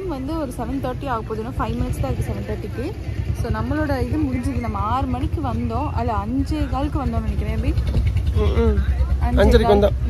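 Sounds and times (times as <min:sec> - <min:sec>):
woman talking: 0:00.0 - 0:07.9, 0:09.2 - 0:09.9.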